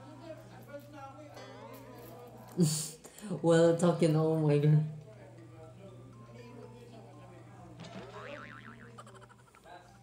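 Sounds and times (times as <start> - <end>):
wobbling warbling tone: 7.8 - 9.6.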